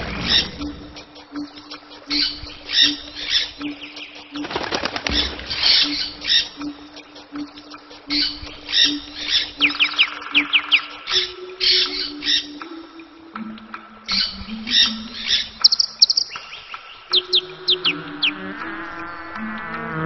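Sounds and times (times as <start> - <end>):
birds chirping: 0.0 - 19.5.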